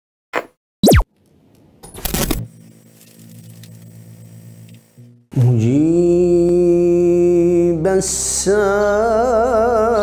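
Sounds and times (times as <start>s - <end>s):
zap with gliding pitch: 0.8s - 1.1s.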